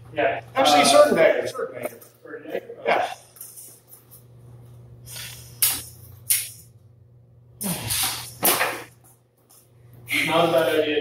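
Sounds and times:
low hum: 0.0 - 10.3.

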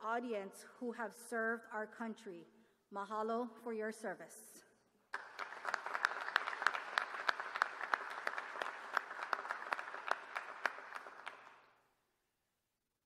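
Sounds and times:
close hands clapping sharply: 5.1 - 11.8
audience applause: 5.2 - 11.7.

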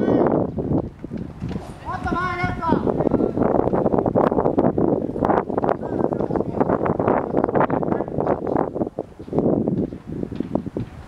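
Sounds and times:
crackling rumble with clicks: 0.4 - 2.6, 3.5 - 11.0.

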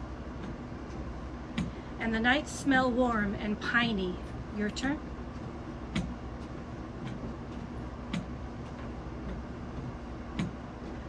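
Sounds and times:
low outdoor rumble and hum: 0.0 - 11.0.

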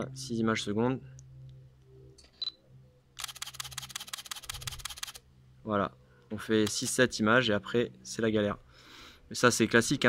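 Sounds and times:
rapid camera shutter clicks: 3.2 - 5.2.

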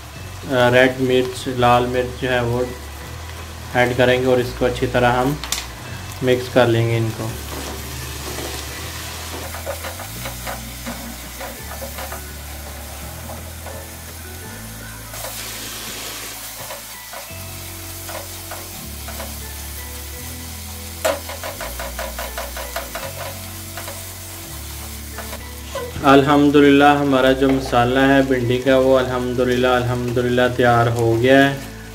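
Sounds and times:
onion masala sizzling in oil: 0.0 - 31.9
soft background music: 0.0 - 31.9.

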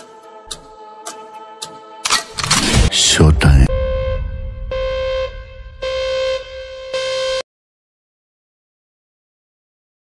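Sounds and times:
low rumble: 2.4 - 7.2
horn blasts: 3.7 - 7.4.

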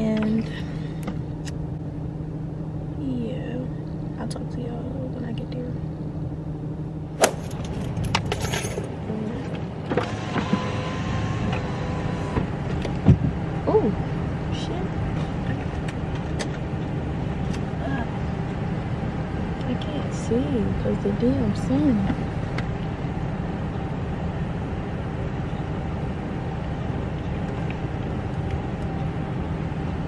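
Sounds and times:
car idling hum: 0.0 - 30.0.

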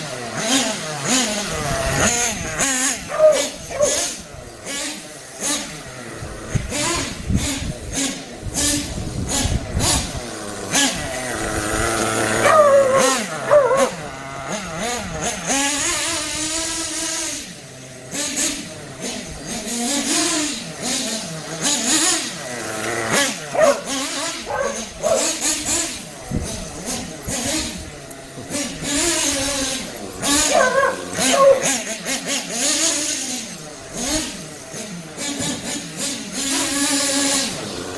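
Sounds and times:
small engine revving: 0.0 - 37.9.

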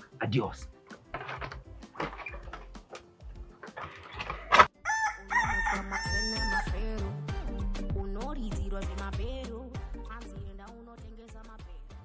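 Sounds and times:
music: 0.0 - 12.0
rooster crowing: 4.8 - 6.8.

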